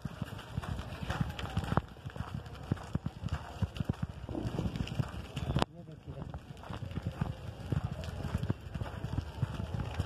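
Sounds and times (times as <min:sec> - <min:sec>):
bicycle clattering on rough road: 0:00.0 - 0:10.0.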